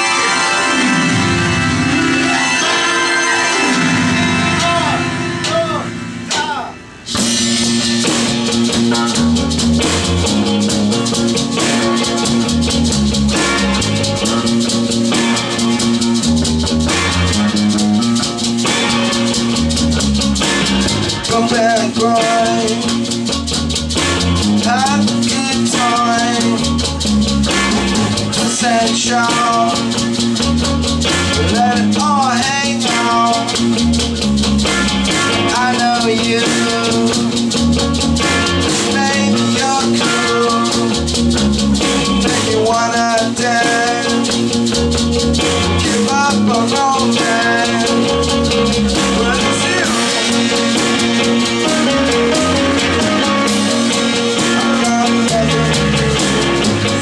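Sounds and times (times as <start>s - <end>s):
synthesizer: 0.0s - 42.8s, 43.6s - 57.0s
rock band playing: 0.0s - 57.0s
person singing: 21.0s - 23.2s, 24.6s - 33.8s, 35.3s - 37.5s, 38.3s - 41.1s, 41.9s - 44.6s, 45.3s - 57.0s.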